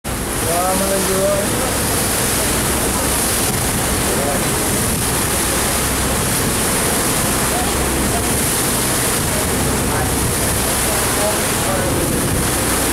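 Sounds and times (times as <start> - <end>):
rushing water in boat wake: 0.0 - 12.9
boat engine running: 0.1 - 12.9.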